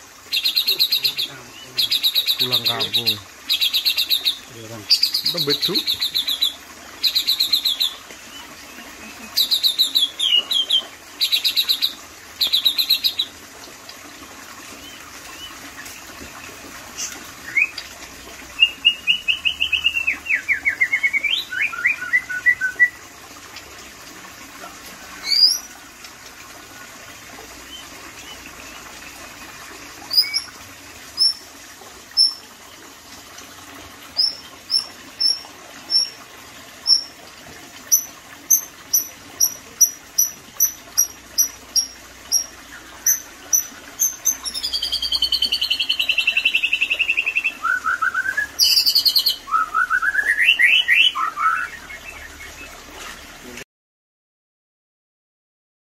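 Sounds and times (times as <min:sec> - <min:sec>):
bird singing: 0:00.3 - 0:08.4, 0:30.1 - 0:30.5, 0:37.9 - 0:52.7
sharp upswept whistles: 0:18.6 - 0:23.0, 0:43.1 - 0:51.8.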